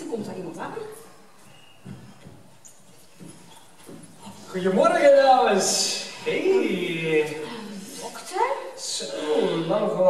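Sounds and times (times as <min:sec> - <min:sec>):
soft footsteps on stage floor: 0:00.0 - 0:04.8.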